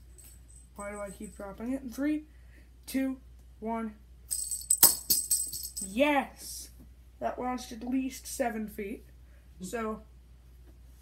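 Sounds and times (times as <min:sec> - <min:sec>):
bell ball jingling: 0:00.0 - 0:01.5, 0:04.3 - 0:05.9.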